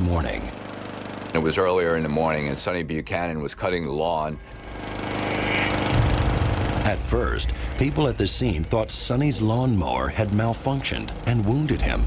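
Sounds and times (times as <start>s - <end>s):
lawn mower engine running: 0.0s - 2.6s, 4.4s - 12.0s.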